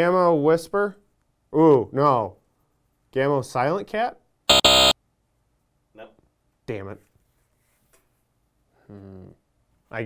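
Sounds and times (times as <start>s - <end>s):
game show wrong-answer buzzer: 4.5s - 5.0s.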